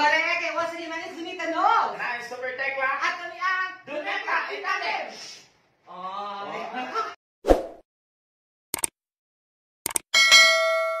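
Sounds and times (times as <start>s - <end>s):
click sound effects: 8.7s - 8.9s, 9.8s - 10.1s
notification bell ding: 10.2s - 11.0s.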